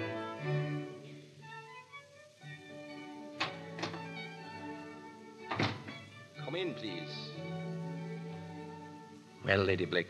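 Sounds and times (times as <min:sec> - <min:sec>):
thump: 0:05.5 - 0:06.0.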